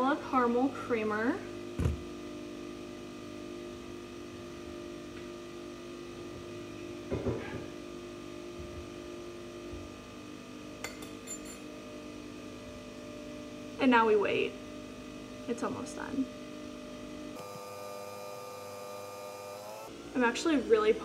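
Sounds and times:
espresso machine humming: 1.8 - 7.4, 15.4 - 20.0.

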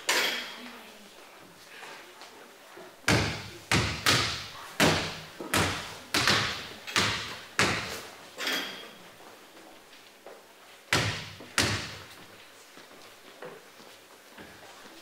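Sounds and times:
basketball bouncing on stage floor: 3.1 - 8.0, 10.9 - 12.1.

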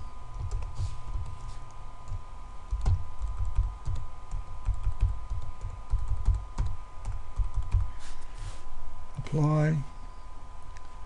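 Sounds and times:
typing on computer keyboard: 2.7 - 7.9.

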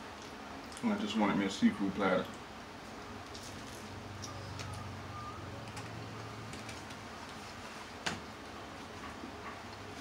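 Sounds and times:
man chewing fried food: 0.0 - 0.9, 6.6 - 10.0
low steady hum: 0.0 - 10.0.

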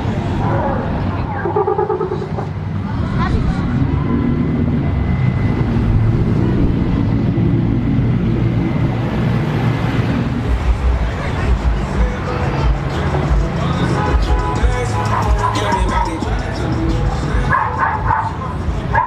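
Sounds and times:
voices calling out: 0.0 - 5.6, 10.8 - 19.0
vehicle engines driving past slowly: 0.0 - 19.0.

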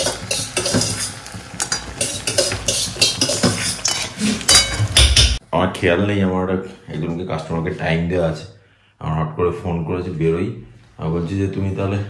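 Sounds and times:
spatula scraping metal pan: 0.0 - 5.0
food sizzling in oil: 0.0 - 5.4.

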